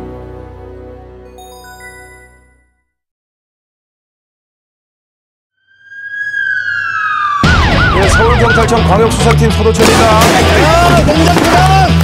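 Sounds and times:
siren tone sliding downward: 5.6s - 8.7s
police siren yelping: 5.8s - 8.9s.

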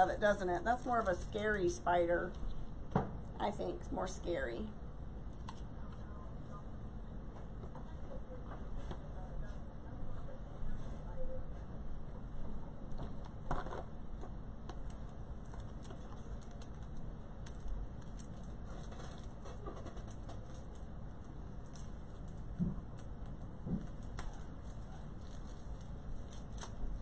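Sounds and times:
background hum: 0.0s - 27.0s.

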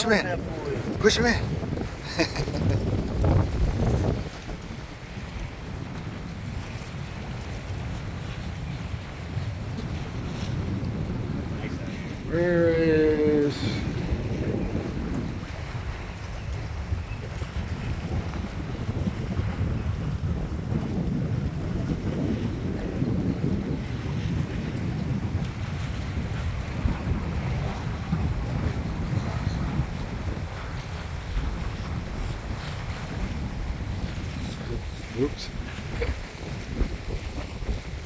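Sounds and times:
choppy water slapping: 0.0s - 38.0s
wind buffeting microphone: 0.0s - 38.0s.

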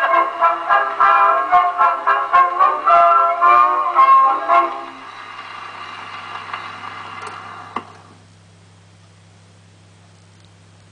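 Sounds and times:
brass band music on phonograph: 0.0s - 7.2s
record surface hiss: 0.0s - 10.9s.

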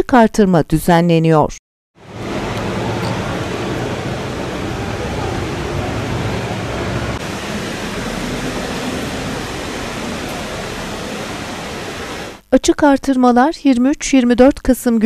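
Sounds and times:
rushing hiss: 2.0s - 12.4s.

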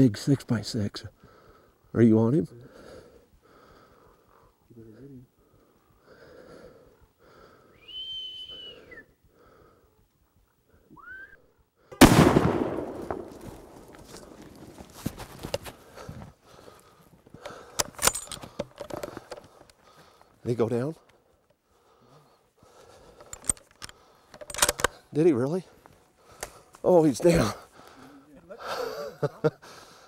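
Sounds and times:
high whistle-like calls: 7.7s - 9.2s, 10.9s - 11.6s
gunshot with long echo: 12.0s - 14.0s
rustling: 13.0s - 20.4s
small clicks: 23.2s - 25.0s.

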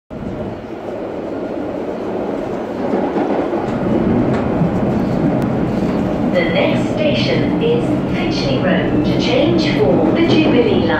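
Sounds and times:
train wheels rumbling on rails: 0.1s - 10.9s.

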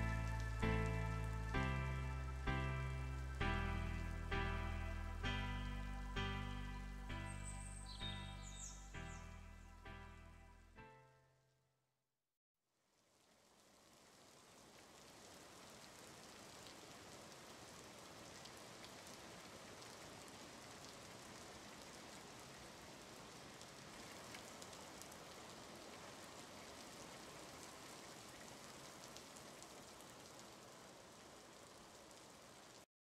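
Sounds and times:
faint hiss with crackles: 0.0s - 9.2s, 12.8s - 32.9s.

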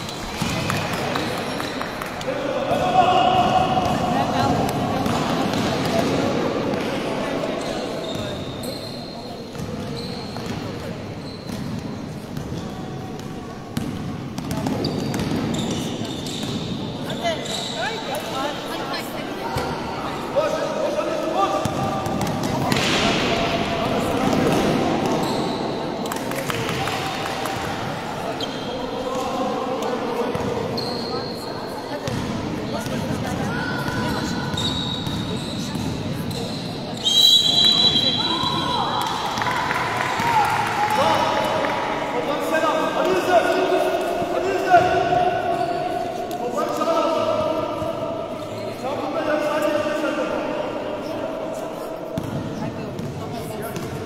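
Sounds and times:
basketball bouncing on gym floor: 13.2s - 16.6s, 52.2s - 54.0s.

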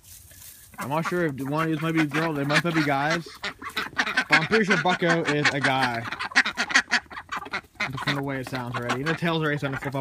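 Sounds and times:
ducks quacking: 0.6s - 10.0s.

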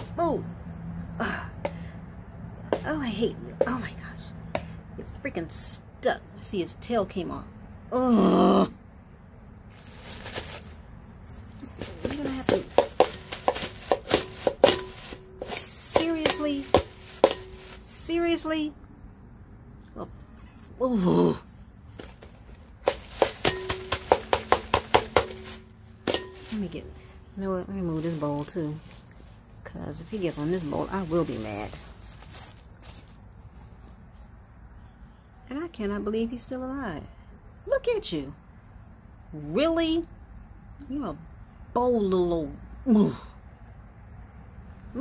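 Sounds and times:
low steady background noise: 0.0s - 45.0s
plastic sheet rustling: 9.7s - 17.9s, 22.0s - 27.1s, 27.8s - 29.4s, 30.0s - 33.9s
metal scraper knocking on plastic bowl: 22.9s - 26.5s.

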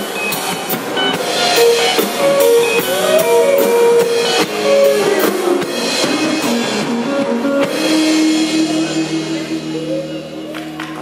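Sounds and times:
drum kit steady beat: 0.0s - 11.0s
electric bass: 0.0s - 11.0s
electric guitars: 0.0s - 11.0s.

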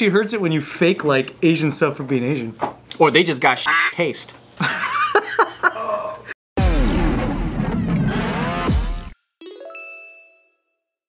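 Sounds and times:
music: 6.6s - 11.0s.

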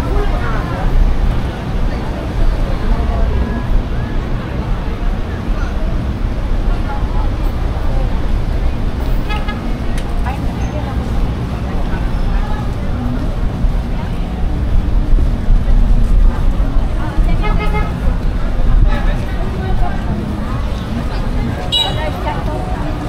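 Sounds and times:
low traffic rumble: 0.0s - 23.0s
voices of shoppers and vendors: 0.0s - 23.0s.

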